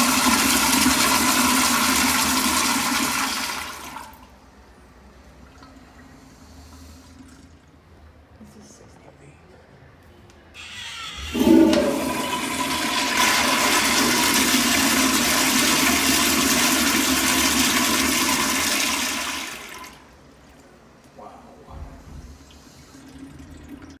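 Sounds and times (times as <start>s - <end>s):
toilet flushing water rush: 0.0s - 4.4s, 5.4s - 8.1s, 10.7s - 20.2s, 22.0s - 24.0s.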